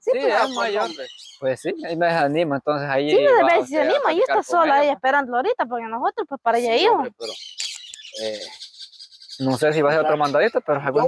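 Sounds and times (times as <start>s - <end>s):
birds chirping: 0.0s - 5.0s, 5.8s - 11.0s.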